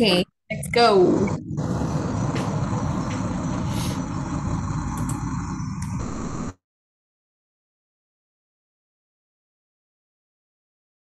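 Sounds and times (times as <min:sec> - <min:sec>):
car engine rumble: 0:01.2 - 0:06.6.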